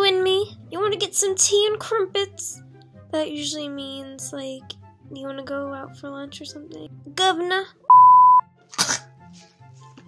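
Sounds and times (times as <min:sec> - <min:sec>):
faint background music: 0:00.0 - 0:10.0
test tone beep: 0:07.9 - 0:08.4.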